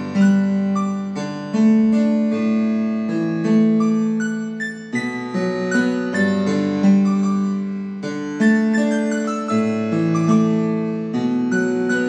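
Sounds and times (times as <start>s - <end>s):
electronic keyboard piano melody: 0.0s - 12.0s.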